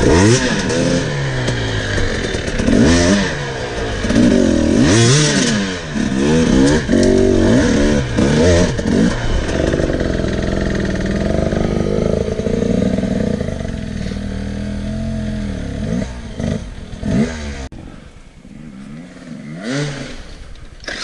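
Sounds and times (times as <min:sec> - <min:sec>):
dirt bike engine revving: 0:00.0 - 0:17.8, 0:18.5 - 0:21.0.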